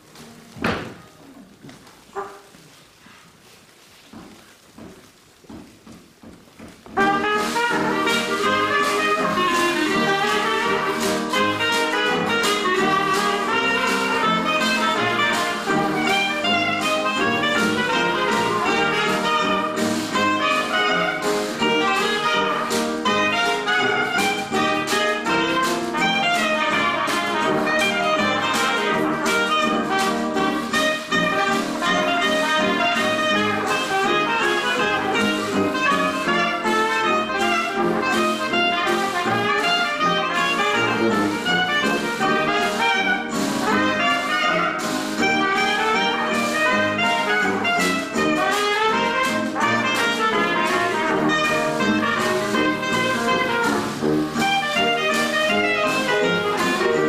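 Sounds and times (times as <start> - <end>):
traditional jazz band playing: 0.0 - 57.0
clarinet: 7.0 - 57.0.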